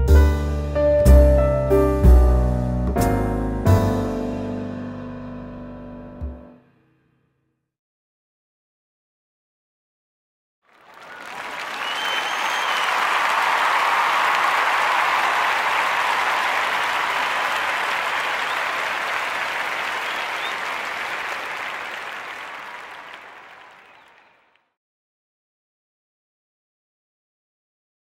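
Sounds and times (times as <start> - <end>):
crowd applauding: 10.7 - 24.6
faint brief whistle: 11.0 - 13.0, 20.0 - 20.8.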